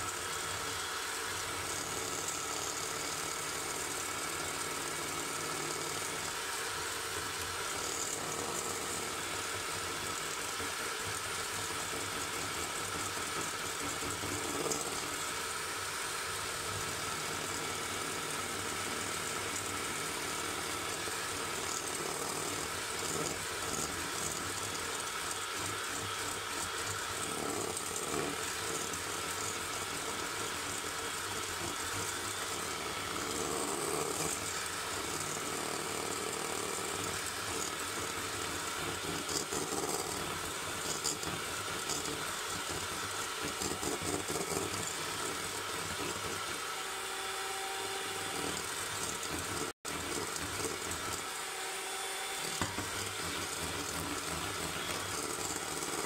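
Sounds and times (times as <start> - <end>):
electric hand mixer whipping: 0.0 - 56.0.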